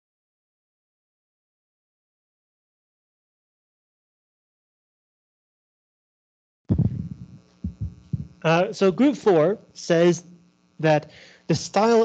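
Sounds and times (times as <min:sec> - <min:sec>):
short low sounds: 0:06.7 - 0:08.5
low buzzing hum: 0:06.7 - 0:12.0.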